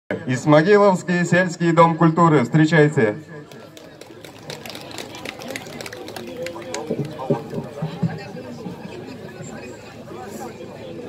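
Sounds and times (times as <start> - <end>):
faint chatter: 3.2 - 11.0
audience clapping: 3.5 - 7.8.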